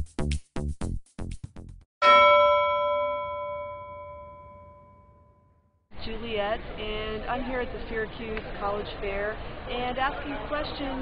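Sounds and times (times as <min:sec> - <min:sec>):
bell-like chime ringing: 0:02.0 - 0:05.6.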